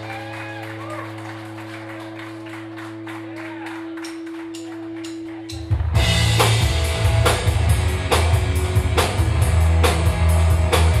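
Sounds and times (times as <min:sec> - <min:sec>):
guitar and bass ringing: 0:00.0 - 0:11.0.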